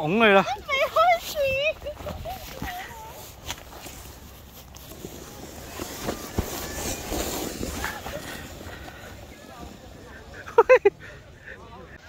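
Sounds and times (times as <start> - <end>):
sled scraping over snow: 0.4 - 11.3.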